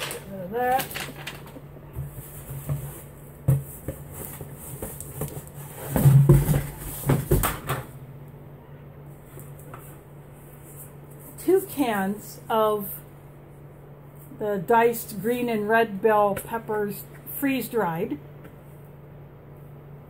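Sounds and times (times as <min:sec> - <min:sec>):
cardboard and paper rustling: 0:00.0 - 0:07.7.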